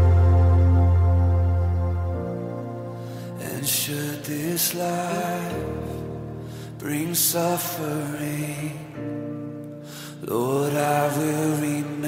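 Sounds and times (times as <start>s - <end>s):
steady musical accompaniment: 0.0s - 6.9s
person singing worship song: 2.8s - 12.0s.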